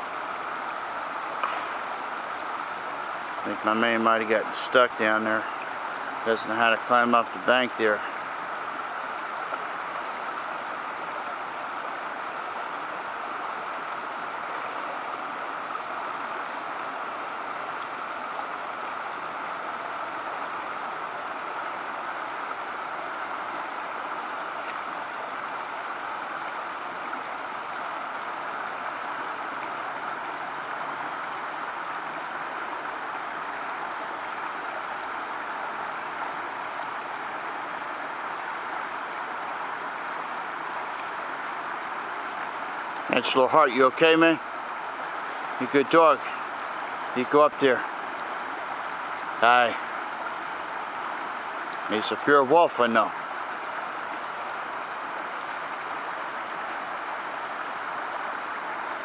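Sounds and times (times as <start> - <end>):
creek water rushing over weir: 0.0 - 59.0.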